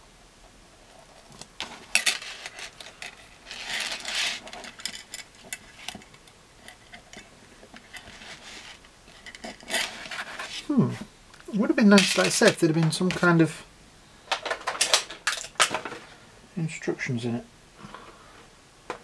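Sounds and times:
chain links rattling: 0:01.1 - 0:06.0.

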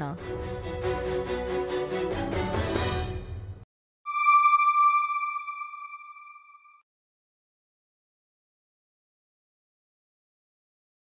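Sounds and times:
bell-like electronic chime: 0:04.1 - 0:06.8.

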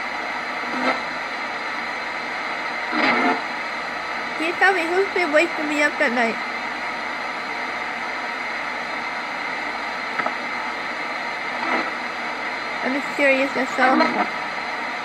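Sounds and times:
radio static hiss: 0:00.0 - 0:15.0.

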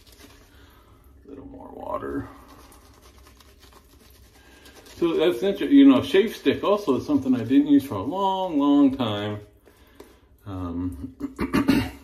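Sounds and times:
shaving brush scratching lather: 0:00.0 - 0:00.5, 0:01.8 - 0:09.0.

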